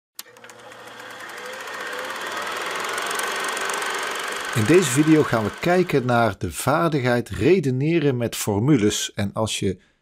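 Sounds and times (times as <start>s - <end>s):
fast mechanical rattle: 0.2s - 6.2s.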